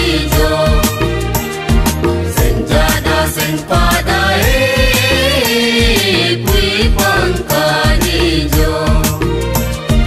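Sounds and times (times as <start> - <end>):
backing music with bass and drums: 0.0 - 10.0
person singing: 2.4 - 9.2.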